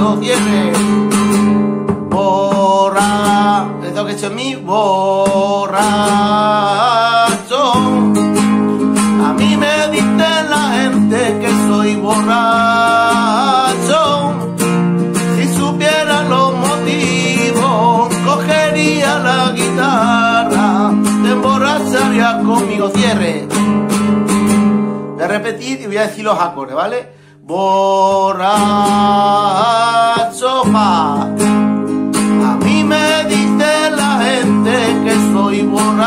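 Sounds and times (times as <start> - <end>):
man singing: 0.0 - 23.7, 25.2 - 36.0
nylon-string guitar strumming: 0.0 - 36.0.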